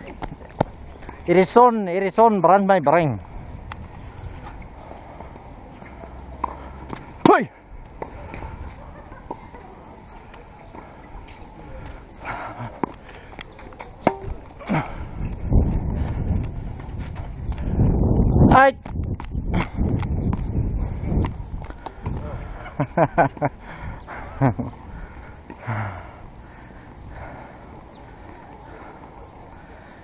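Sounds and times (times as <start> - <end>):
tennis ball hitting racket: 13.6 - 14.6.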